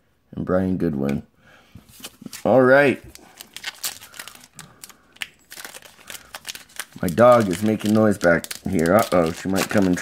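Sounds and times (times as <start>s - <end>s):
wrapper being torn and crinkled: 3.1s - 10.0s.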